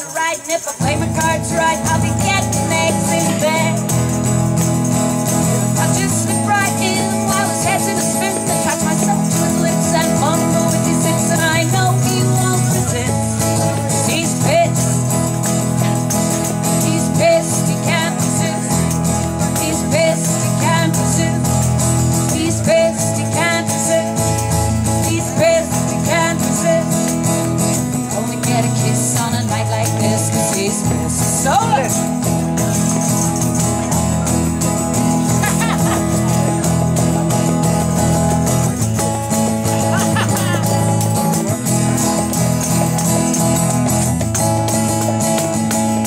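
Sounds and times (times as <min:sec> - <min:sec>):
woman singing: 0:00.0 - 0:04.4, 0:05.6 - 0:32.0
strummed acoustic guitar: 0:00.0 - 0:46.0
tambourine jingling: 0:00.0 - 0:46.0.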